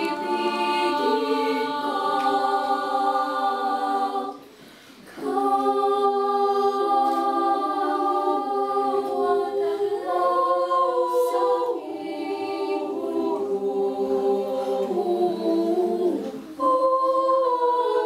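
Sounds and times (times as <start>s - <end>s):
children's choir singing: 0.0s - 18.0s.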